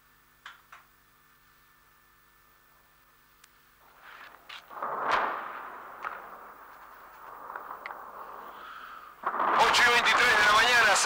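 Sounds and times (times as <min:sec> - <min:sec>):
steady rushing noise: 0:03.8 - 0:11.0
distant anti-aircraft gunfire: 0:03.9 - 0:11.0.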